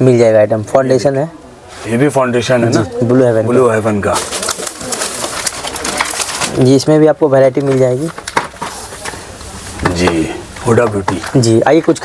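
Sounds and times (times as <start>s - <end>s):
plastic packaging crinkling: 3.6s - 10.1s.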